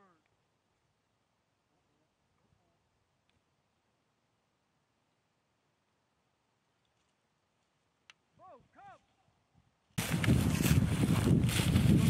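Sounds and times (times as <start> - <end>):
footsteps through dry grass: 10.0 - 12.0
wind on microphone: 10.0 - 12.0.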